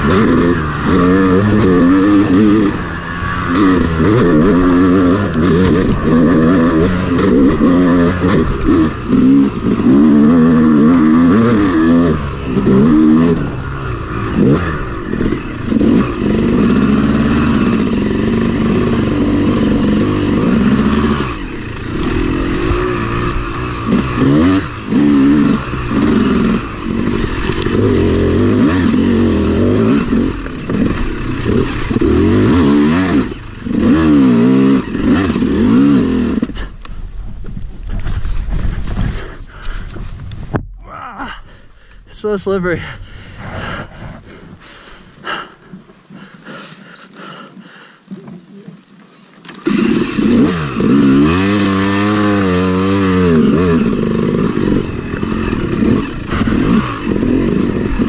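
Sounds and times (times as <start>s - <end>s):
dirt bike engine revving: 0.0s - 36.8s, 49.4s - 58.0s.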